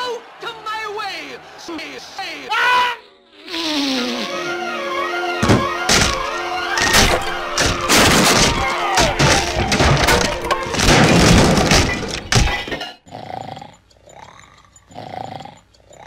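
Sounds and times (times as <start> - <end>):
orchestral music: 4.0 - 11.6
cartoon crashing and breaking: 5.4 - 12.8.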